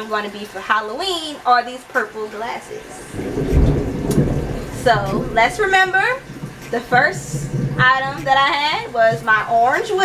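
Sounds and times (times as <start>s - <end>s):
rolling thunder rumble: 3.0s - 10.0s.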